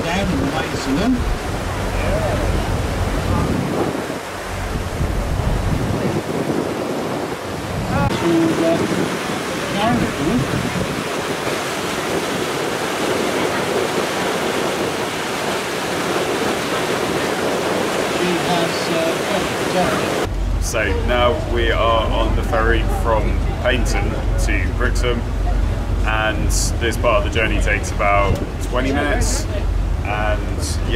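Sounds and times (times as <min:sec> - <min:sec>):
water churning: 0:00.0 - 0:30.9
wind buffeting microphone: 0:00.0 - 0:30.9.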